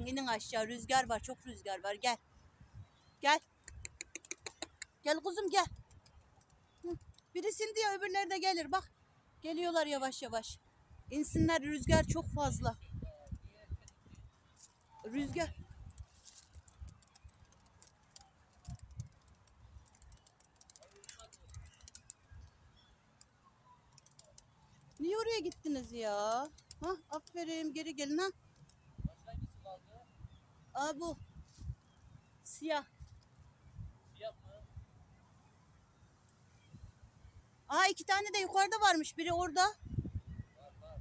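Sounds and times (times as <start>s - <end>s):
wind rumble on microphone: 11.0s - 14.3s, 15.0s - 17.4s, 28.9s - 30.4s, 31.0s - 32.2s, 33.7s - 34.9s, 39.3s - 41.0s.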